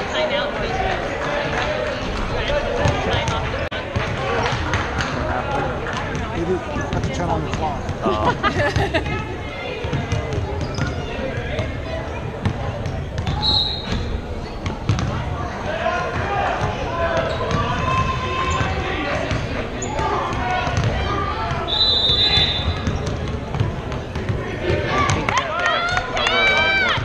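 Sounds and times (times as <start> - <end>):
babble of voices: 0.0 - 21.7.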